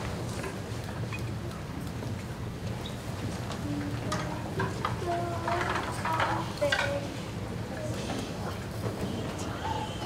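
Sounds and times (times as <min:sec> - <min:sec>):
low murmur of voices: 0:00.0 - 0:10.0.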